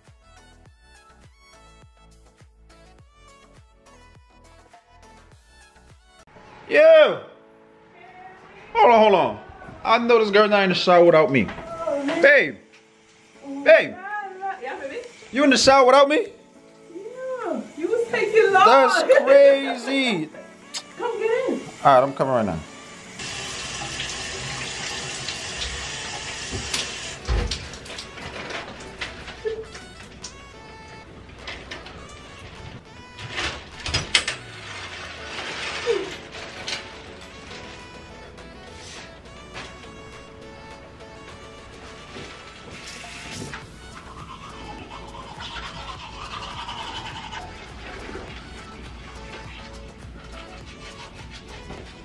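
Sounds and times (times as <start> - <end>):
background music: 0.0 - 52.0
shower water spraying: 11.8 - 40.2, 41.4 - 52.0
toothbrush scrubbing teeth: 42.7 - 52.0.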